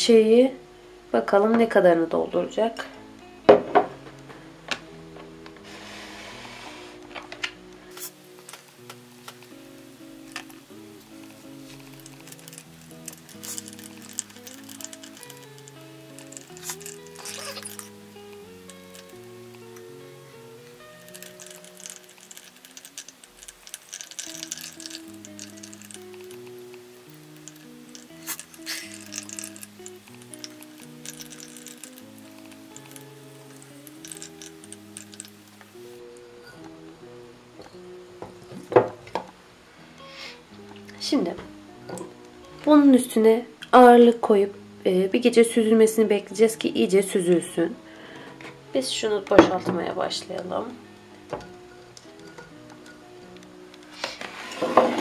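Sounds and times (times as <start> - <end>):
plucked-string instrument melody: 7.0 - 44.6, 45.6 - 55.0.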